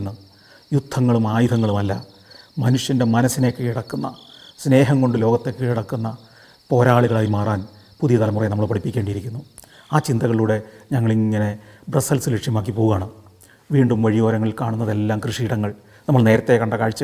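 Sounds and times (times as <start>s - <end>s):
crickets chirring: 0.0s - 17.0s
man talking: 0.0s - 17.0s.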